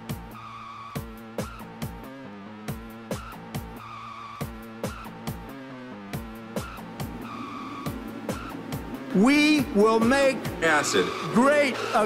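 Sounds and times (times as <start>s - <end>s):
sustained synth tones: 6.9s - 12.0s.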